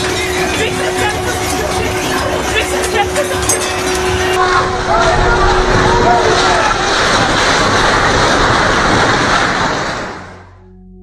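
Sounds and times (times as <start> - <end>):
rumbling roar of collapsing buildings: 0.0 - 11.0
people crying out: 0.2 - 8.2.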